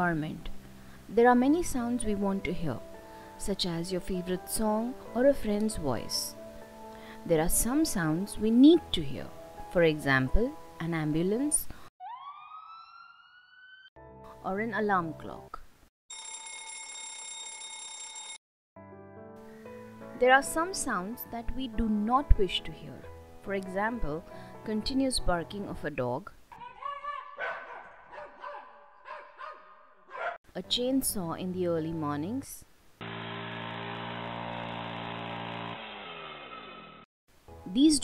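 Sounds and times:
ambulance siren wailing: 12.0s - 13.9s
dog barking: 26.6s - 30.4s.

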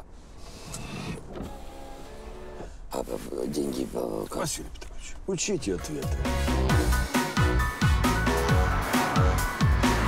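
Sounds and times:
cabin road noise: 0.0s - 10.0s
power window motor humming: 0.5s - 2.7s.

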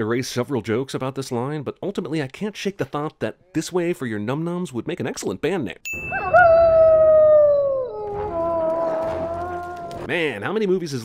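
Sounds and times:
wolves howling: 6.1s - 10.1s.

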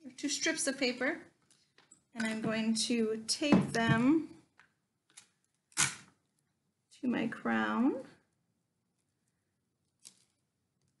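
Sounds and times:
tape tearing rasp: 5.7s - 6.1s.

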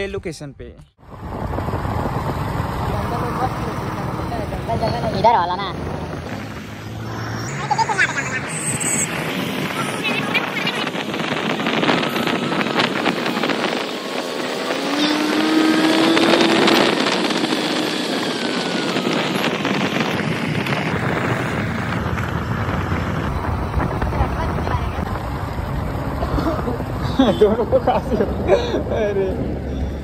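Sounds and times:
vehicle engine and road noise: 0.0s - 30.0s
wind on microphone: 1.0s - 3.2s, 3.8s - 27.0s
rising pitched tone: 1.0s - 27.0s
deep rumble: 1.0s - 30.0s.

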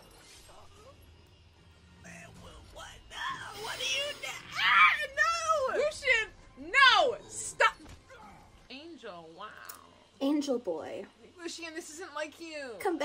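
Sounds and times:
voices screaming and crying out: 3.2s - 8.5s.

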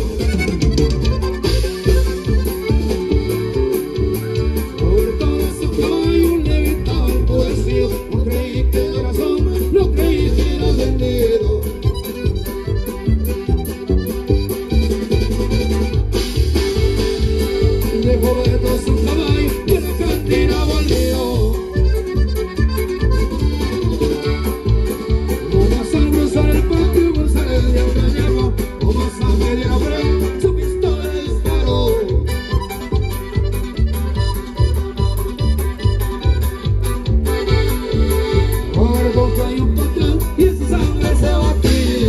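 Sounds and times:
live band with accordion: 0.0s - 42.0s
steady bass beat: 0.0s - 42.0s.

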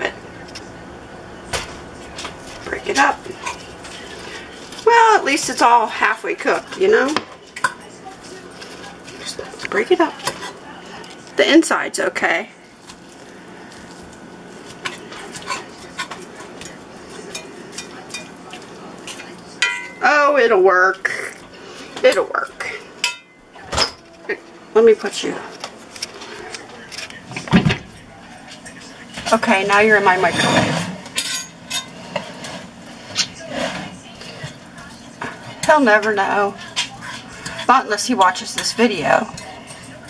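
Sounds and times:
metal fork scraping in a skillet: 2.6s - 11.1s, 13.7s - 19.9s, 29.4s - 40.0s.

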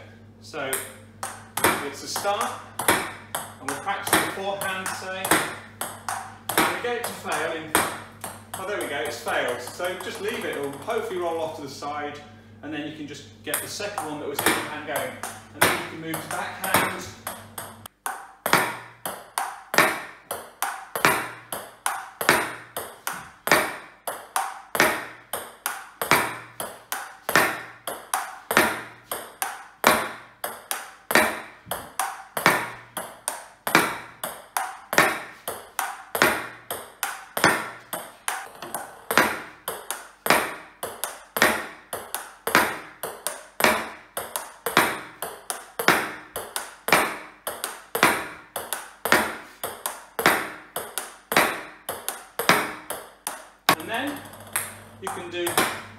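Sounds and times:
table tennis ball clicks: 0.7s - 11.2s, 13.5s - 55.9s.

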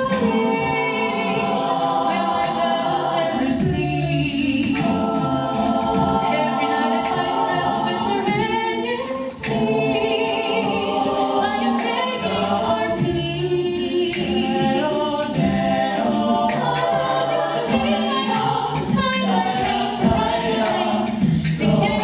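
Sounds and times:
group singing backing vocals: 0.0s - 22.0s
woman singing lead: 0.0s - 22.0s.

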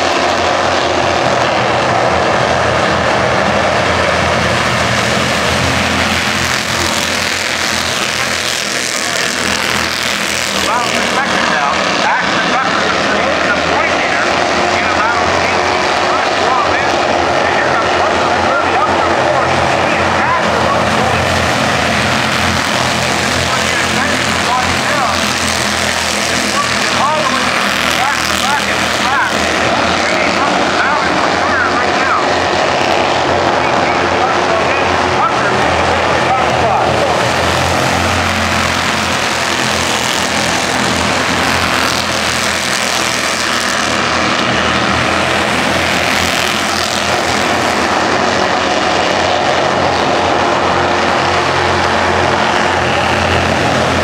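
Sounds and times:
race car engines buzzing: 0.0s - 54.0s.

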